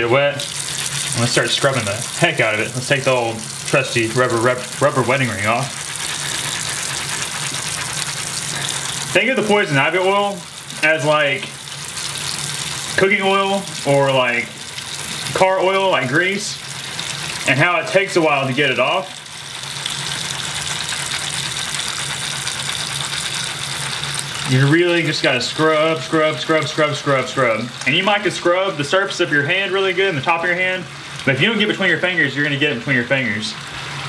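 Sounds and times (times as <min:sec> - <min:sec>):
faucet running into sink: 0:00.0 - 0:29.9
wet rubbing with a loofah: 0:04.7 - 0:09.1.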